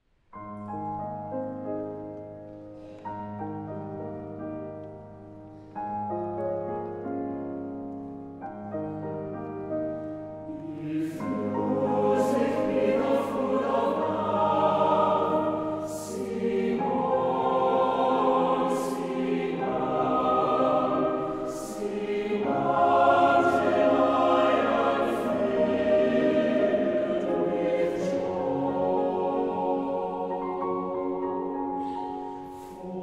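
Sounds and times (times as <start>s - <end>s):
choir breathing: 9.9s - 33.0s
mixed choir singing: 10.5s - 33.0s.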